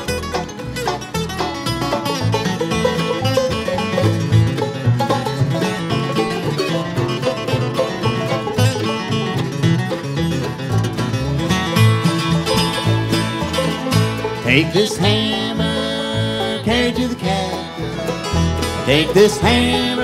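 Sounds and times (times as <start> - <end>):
bluegrass band playing: 0.0 - 20.0.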